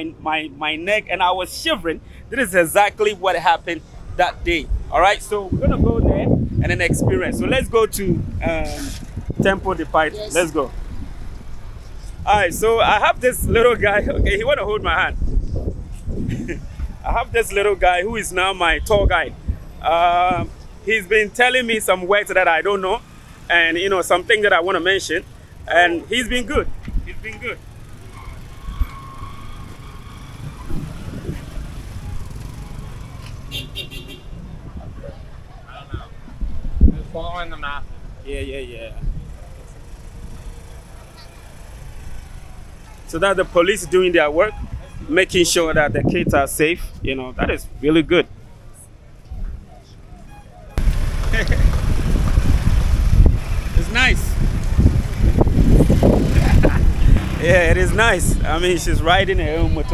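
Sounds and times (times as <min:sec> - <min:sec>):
man's voice: 0:00.0 - 0:10.7, 0:53.8 - 0:54.2, 0:56.6 - 0:59.9
car and motorbike traffic: 0:00.0 - 0:59.9.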